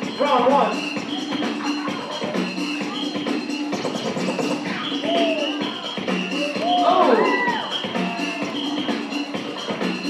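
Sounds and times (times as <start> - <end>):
breakbeat music: 0.0 - 10.0.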